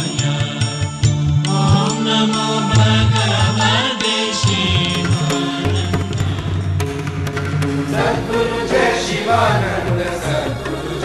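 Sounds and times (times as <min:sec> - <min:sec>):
sharp percussive strikes: 0:00.0 - 0:09.5.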